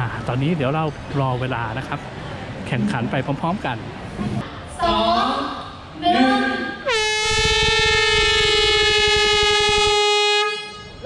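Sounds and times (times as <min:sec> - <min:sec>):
air horn blast: 0:06.8 - 0:11.0.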